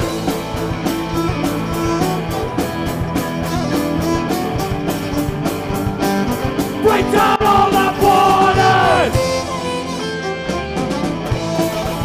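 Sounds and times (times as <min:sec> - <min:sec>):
drum kit beat: 0:00.0 - 0:09.5
strummed guitars: 0:00.0 - 0:12.0.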